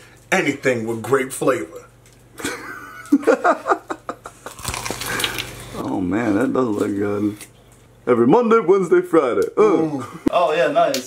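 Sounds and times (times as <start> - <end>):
man laughing: 2.4 - 4.6
crunchy bite into chicken: 4.5 - 5.6.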